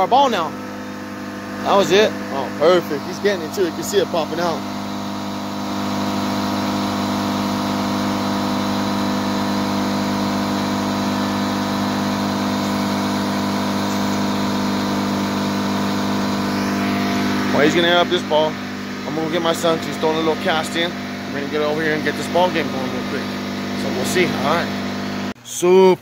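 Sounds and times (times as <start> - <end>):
air compressor running: 0.0 - 25.5.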